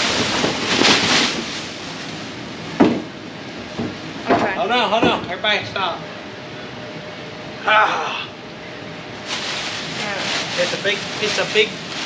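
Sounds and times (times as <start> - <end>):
bean bag tumbling: 0.0 - 3.0
plastic sheeting rustling: 0.0 - 3.1, 9.1 - 12.0.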